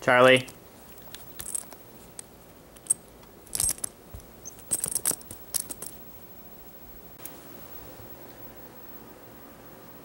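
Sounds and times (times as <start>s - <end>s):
metal clasp and chain jingling: 1.1s - 1.8s, 2.9s - 6.0s.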